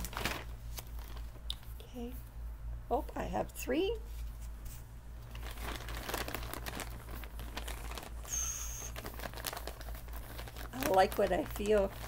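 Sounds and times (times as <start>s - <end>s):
plastic packaging crinkling: 0.0s - 1.8s, 5.2s - 12.0s.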